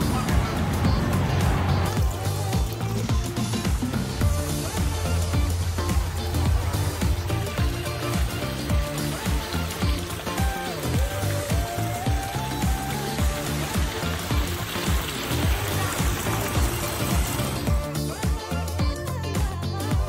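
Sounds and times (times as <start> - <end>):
upbeat dance music: 0.0 - 20.0.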